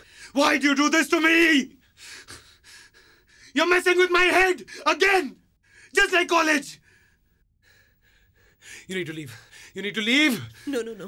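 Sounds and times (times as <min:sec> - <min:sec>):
person breathing: 0:00.0 - 0:00.4, 0:01.8 - 0:03.6, 0:06.8 - 0:09.8
sharp gasping breath: 0:01.8 - 0:03.6, 0:06.8 - 0:09.8.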